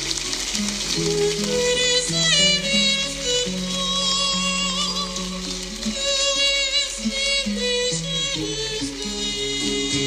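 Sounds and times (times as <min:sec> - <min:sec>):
held low accompanying notes: 0:00.0 - 0:10.0.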